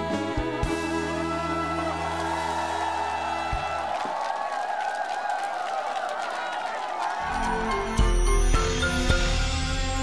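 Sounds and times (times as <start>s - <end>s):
audience cheering and clapping: 0.1s - 8.4s.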